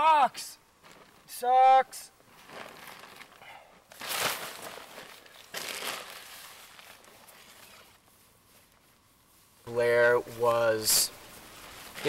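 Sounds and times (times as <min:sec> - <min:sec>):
tent fabric rustling: 0:00.8 - 0:01.3, 0:02.2 - 0:12.0.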